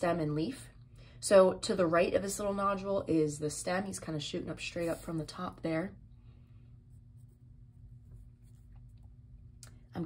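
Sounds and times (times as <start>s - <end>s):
low room hum: 0.0s - 10.0s
pencil scratching on paper: 4.6s - 5.2s, 6.9s - 9.0s.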